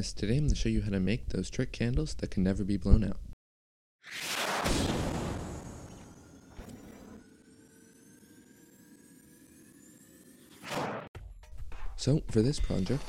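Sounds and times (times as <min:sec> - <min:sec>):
synthetic shimmer of rising tones: 0:05.8 - 0:10.7.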